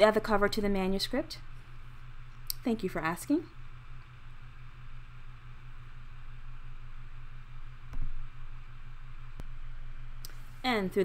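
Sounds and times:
low electrical hum: 0.0 - 11.0
small tick: 10.2 - 10.4.

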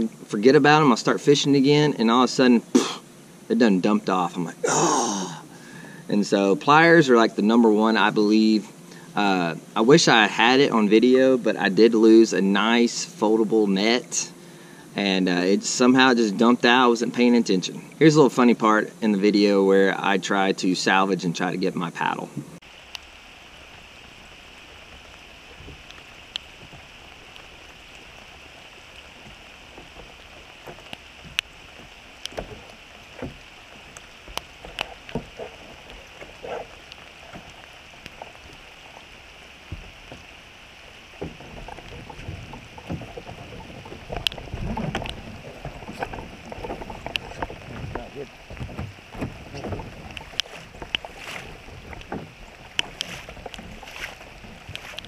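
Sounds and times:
rain and river current hiss: 0.0 - 55.0.

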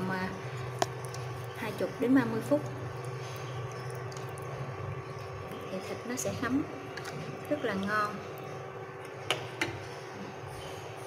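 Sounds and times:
pot simmering bubbling: 0.0 - 9.8
low steady hum: 0.0 - 11.0.

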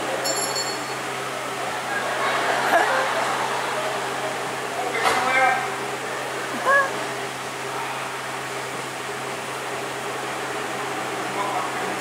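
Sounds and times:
steady low hum: 0.0 - 12.0
high-pitched vocal cry: 6.5 - 7.0.

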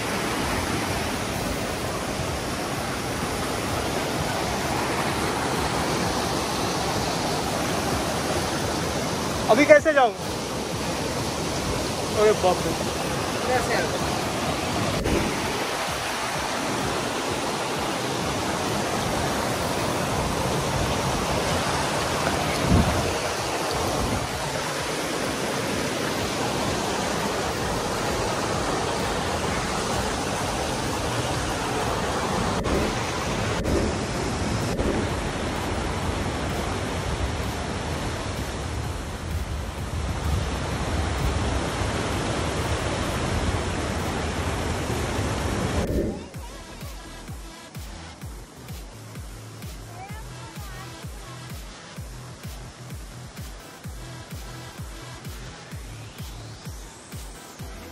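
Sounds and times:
water rushing over rocks: 0.0 - 57.9.

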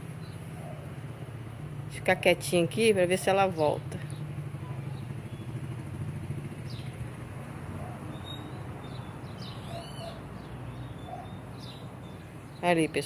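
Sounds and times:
low mechanical hum: 0.0 - 13.0
high bird chirps: 8.1 - 12.6.

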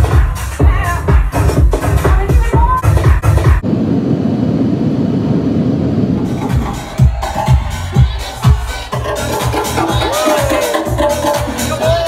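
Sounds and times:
house music through club sound system: 0.0 - 3.6, 6.2 - 12.0.

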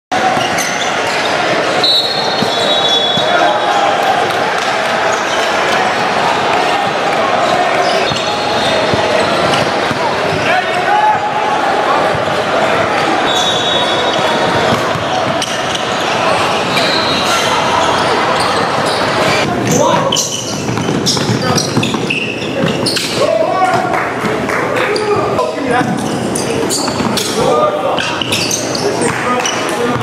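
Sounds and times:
crowd hubbub echoing: 0.1 - 30.0
sneakers squeaking: 0.2 - 11.3, 12.0 - 30.0
basketball bouncing on court: 2.3 - 3.4, 7.9 - 10.5, 14.6 - 16.0, 19.6 - 23.1, 26.8 - 27.3.

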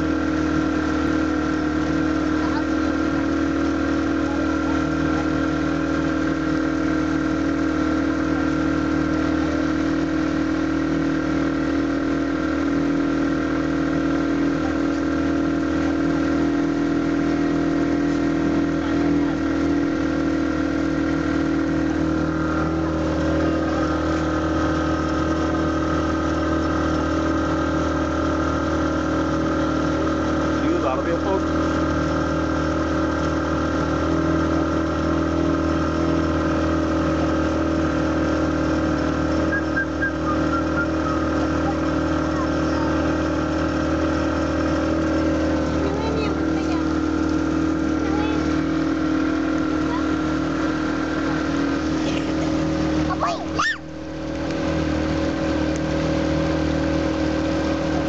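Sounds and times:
boat engine droning: 0.0 - 58.0.

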